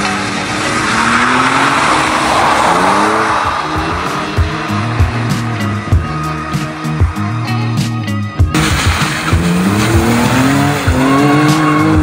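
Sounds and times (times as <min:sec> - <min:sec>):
background music with beat: 0:00.0 - 0:12.0
car engine revving: 0:00.0 - 0:12.0.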